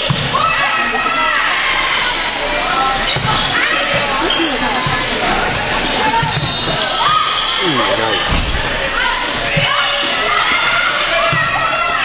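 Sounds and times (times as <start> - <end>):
players calling out: 0.2 - 12.0
sneakers squeaking on court: 2.1 - 9.8.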